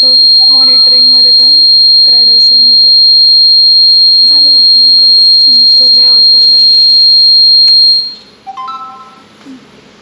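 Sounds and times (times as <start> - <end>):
high-pitched electronic buzzer: 0.0 - 9.2.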